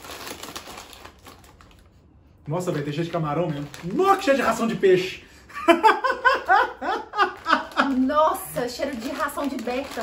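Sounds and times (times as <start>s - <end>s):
plastic snack bag crinkling: 0.0s - 5.2s, 6.3s - 10.0s.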